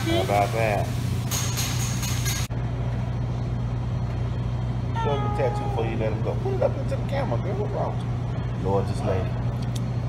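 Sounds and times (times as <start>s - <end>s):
restaurant room hum: 0.0s - 10.0s.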